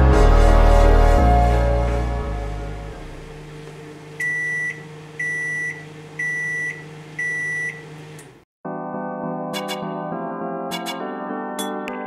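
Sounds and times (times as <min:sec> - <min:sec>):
microwave oven beeping: 0:03.3 - 0:08.4.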